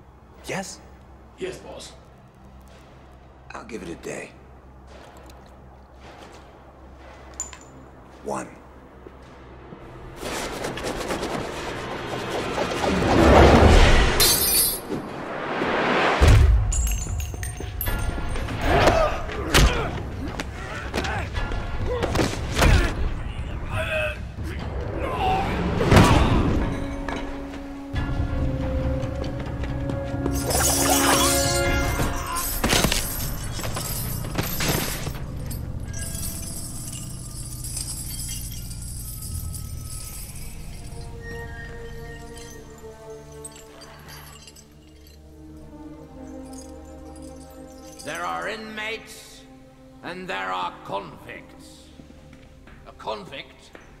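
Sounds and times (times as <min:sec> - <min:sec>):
film score music: 0:00.0 - 0:54.0
sharp crash: 0:12.7 - 0:16.9
sharp impact hits: 0:13.0 - 0:18.6.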